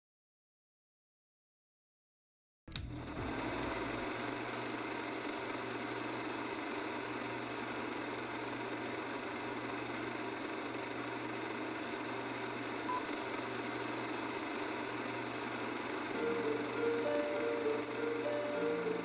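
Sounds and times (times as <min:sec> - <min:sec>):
film projector whirring: 0:02.7 - 0:19.0.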